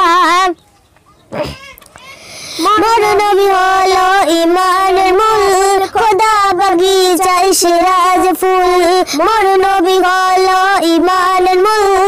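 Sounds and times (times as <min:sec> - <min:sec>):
girl singing: 0:00.0 - 0:00.6, 0:01.5 - 0:12.0.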